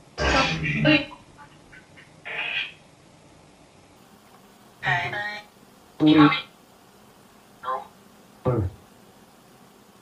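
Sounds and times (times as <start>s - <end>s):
garbled voice-like bursts: 2.2s - 2.8s.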